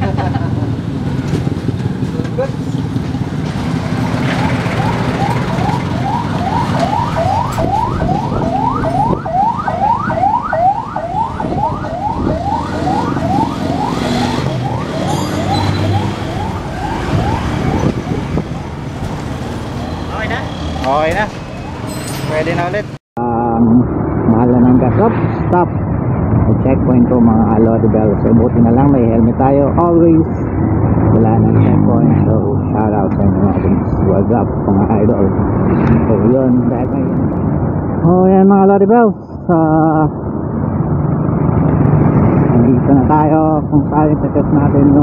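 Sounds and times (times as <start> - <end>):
motorcycle engines running: 0.0 - 21.5
street traffic: 0.0 - 45.0
electronic siren sweeping upward: 4.0 - 18.9.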